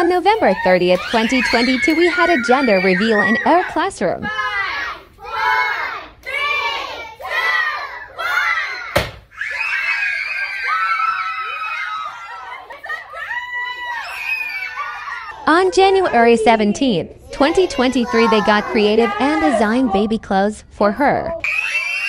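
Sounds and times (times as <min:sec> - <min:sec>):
children screaming: 0:00.0 - 0:05.8, 0:07.4 - 0:15.4, 0:21.4 - 0:22.0
children calling out: 0:00.0 - 0:15.5, 0:17.3 - 0:20.0.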